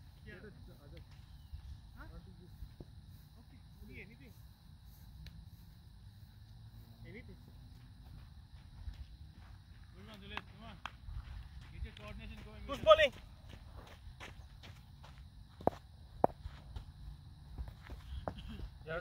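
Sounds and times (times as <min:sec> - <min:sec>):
distant players calling: 0:11.6 - 0:13.4.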